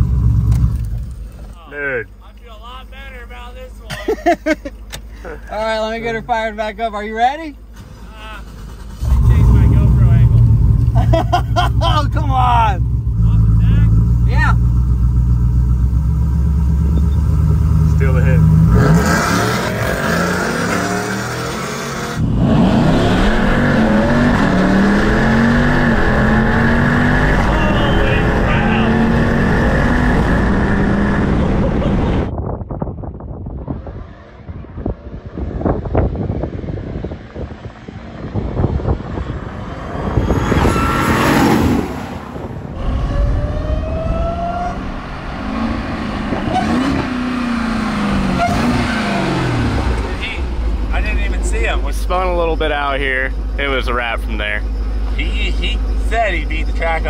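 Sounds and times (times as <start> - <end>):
distant racing engines: 4.8 - 32.3, 33.4 - 57.0
engine at full throttle upshifting: 8.5 - 32.3, 33.6 - 57.0
car engine driving past: 33.9 - 53.4.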